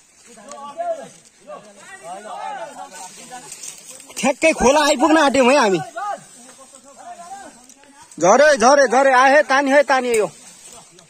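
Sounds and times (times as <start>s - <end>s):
men calling out and talking: 0.0s - 11.0s.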